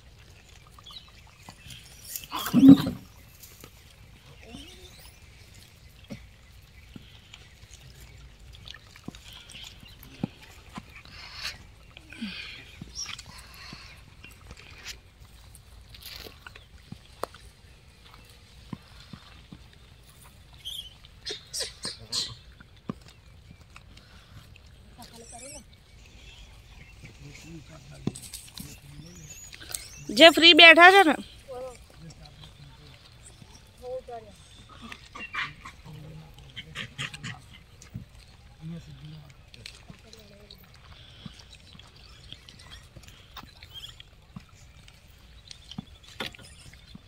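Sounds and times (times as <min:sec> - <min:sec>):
crunching and rustling: 0:14.5 - 0:17.5
light clicks and rustles: 0:27.0 - 0:29.9.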